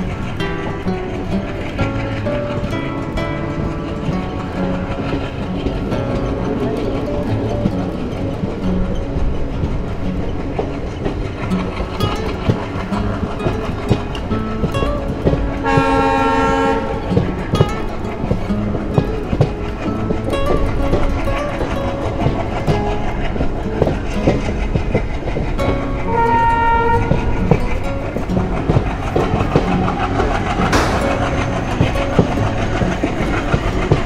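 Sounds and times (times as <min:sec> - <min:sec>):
train wheels clacking on rails: 0:00.0 - 0:34.0
locomotive horn blast: 0:15.6 - 0:17.6, 0:26.1 - 0:27.8.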